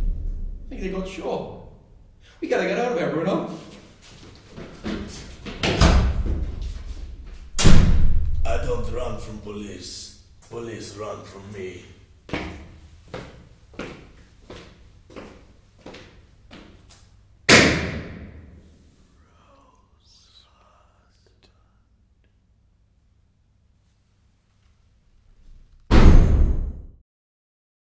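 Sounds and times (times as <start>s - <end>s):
loud bang echoing: 0.0s - 2.1s, 7.5s - 9.2s, 17.5s - 18.6s, 25.9s - 26.9s
heavy door slamming: 5.6s - 6.8s, 7.5s - 9.1s, 25.9s - 26.8s.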